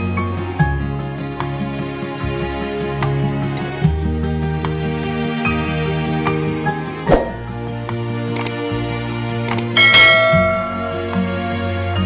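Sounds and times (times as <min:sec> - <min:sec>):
background music: 0:00.0 - 0:12.0
button clicks: 0:07.1 - 0:07.4
bright bell chime: 0:09.8 - 0:11.1.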